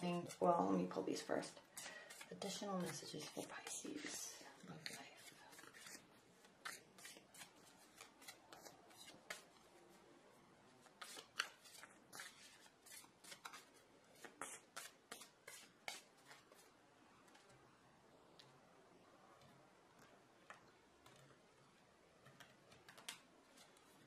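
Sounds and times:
cards being shuffled: 4.8 - 9.8, 10.8 - 16.7, 22.2 - 24.0.

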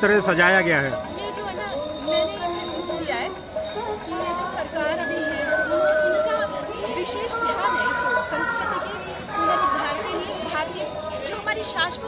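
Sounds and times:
crowd chatter: 0.0 - 12.0
woman talking: 1.1 - 12.0.

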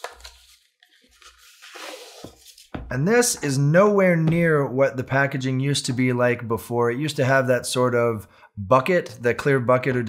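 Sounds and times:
paper rustling and scraping: 0.0 - 2.8.

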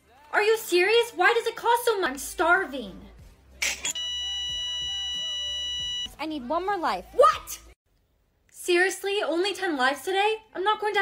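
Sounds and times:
high-pitched electronic beep: 3.8 - 6.1.

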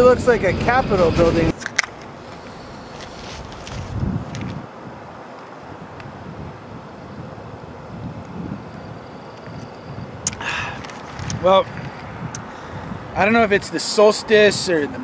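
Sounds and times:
steady hiss: 0.0 - 4.6
wind buffeting microphone: 0.0 - 15.0.

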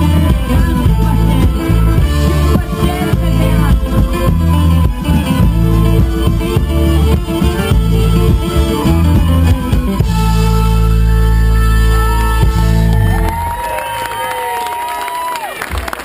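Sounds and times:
live folk band playing: 0.0 - 13.7.

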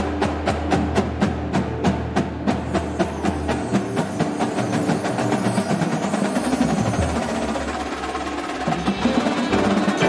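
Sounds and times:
marching drumline: 0.0 - 10.0.

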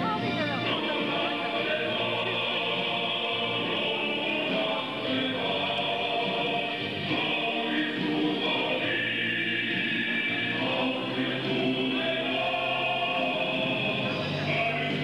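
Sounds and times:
choir singing held notes: 0.6 - 15.0.

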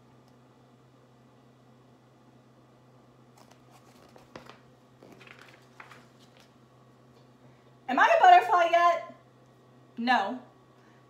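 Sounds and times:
paper rustling: 3.4 - 6.6.

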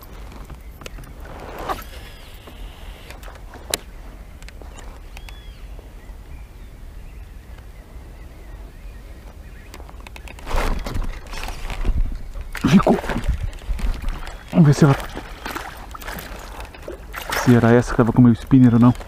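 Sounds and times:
wind rumbling on microphone: 0.0 - 19.0
faint bird chirps: 0.4 - 11.0
rushing splashy water noise: 12.6 - 18.0.

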